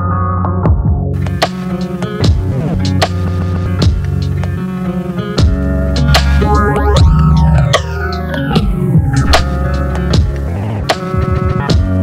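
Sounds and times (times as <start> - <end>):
lo-fi hip-hop beat: 0.5 - 12.0.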